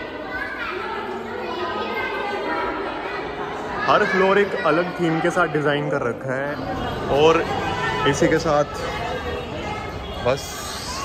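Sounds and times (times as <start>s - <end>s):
background chatter of visitors: 0.0s - 11.0s
children's high voices: 0.0s - 11.0s.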